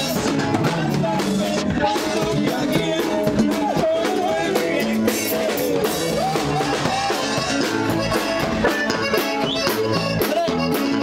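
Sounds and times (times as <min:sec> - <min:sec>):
acoustic guitars playing melody: 0:00.0 - 0:11.0
steady drum beat: 0:00.0 - 0:11.0.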